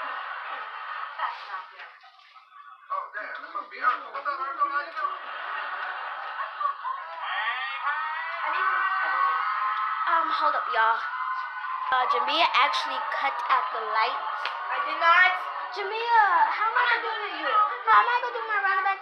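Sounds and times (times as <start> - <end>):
indistinct voices talking: 2.5 - 19.0.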